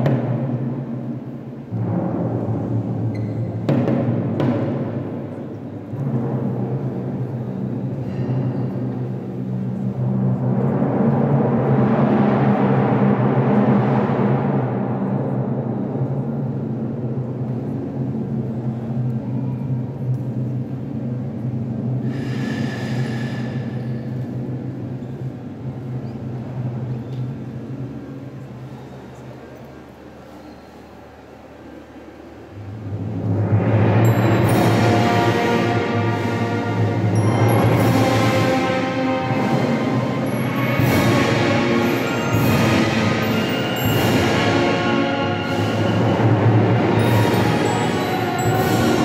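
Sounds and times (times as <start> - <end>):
drum roll: 0.0 - 8.0, 32.7 - 49.0
band playing funeral march: 33.6 - 49.0.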